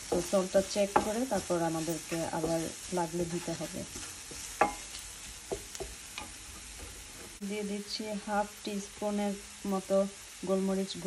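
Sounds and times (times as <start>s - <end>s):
vegetables sizzling in frying pan: 0.0s - 11.0s.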